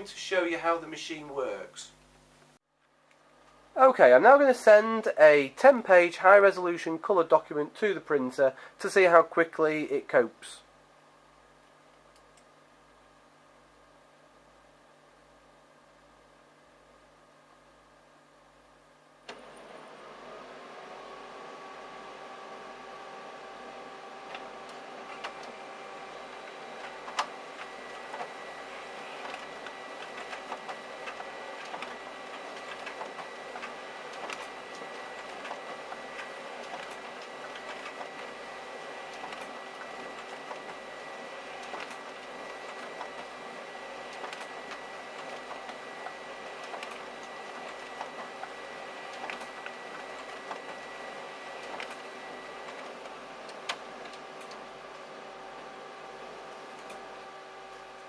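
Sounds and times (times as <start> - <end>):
printer motors whirring: 19.2 - 58.0
printer clicks: 24.2 - 38.4, 39.1 - 40.8, 41.4 - 43.4, 44.0 - 55.1.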